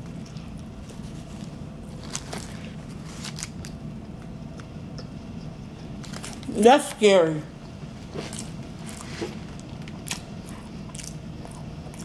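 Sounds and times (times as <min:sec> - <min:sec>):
person chewing: 0:08.2 - 0:12.0.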